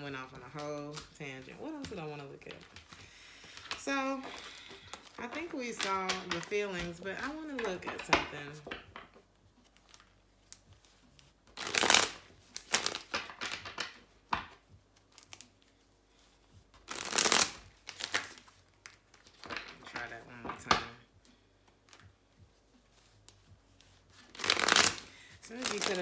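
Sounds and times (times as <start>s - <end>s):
cards being shuffled: 0.0s - 26.0s
cards fluttering: 11.5s - 14.5s, 16.8s - 19.9s, 24.3s - 26.0s
cards clicking: 24.3s - 26.0s.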